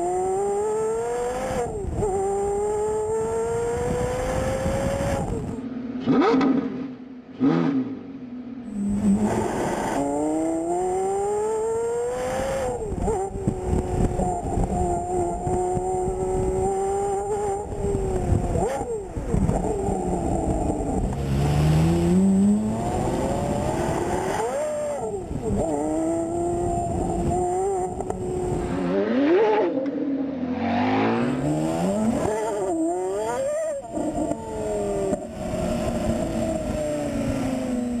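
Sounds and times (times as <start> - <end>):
car engine accelerating hard: 8.9 - 38.0.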